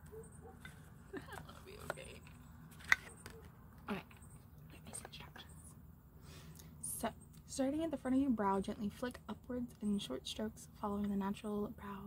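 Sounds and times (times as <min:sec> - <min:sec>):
low room hum: 0:00.0 - 0:12.0
person whispering: 0:04.7 - 0:05.7.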